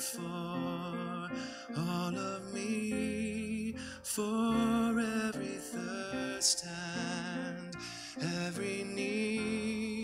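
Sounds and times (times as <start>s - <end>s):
man singing: 0.0s - 10.0s.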